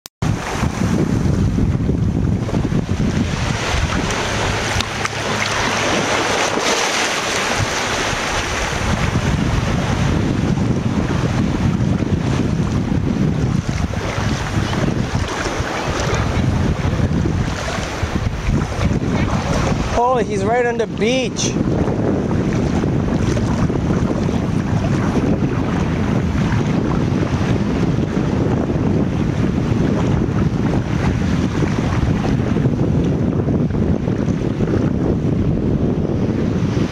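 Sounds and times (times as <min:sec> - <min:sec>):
surf washing at shore: 0:00.2 - 0:36.9
wind buffeting microphone: 0:00.2 - 0:36.9.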